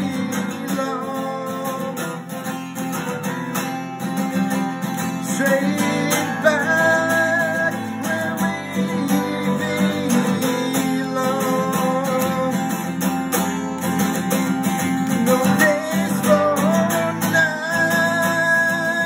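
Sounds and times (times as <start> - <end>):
man singing: 0.0 - 2.9, 4.8 - 19.0
acoustic guitar strummed: 0.0 - 19.0.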